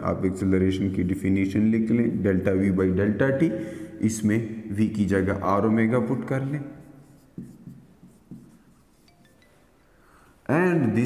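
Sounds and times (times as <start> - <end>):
marker writing on whiteboard: 6.2 - 9.5.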